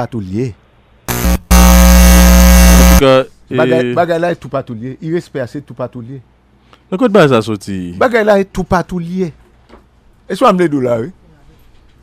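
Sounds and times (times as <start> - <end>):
loud electronic buzz: 1.1 - 3.0.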